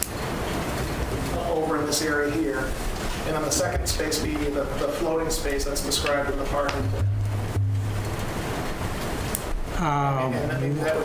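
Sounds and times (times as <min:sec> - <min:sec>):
rushing noise on microphone: 0:00.0 - 0:11.0.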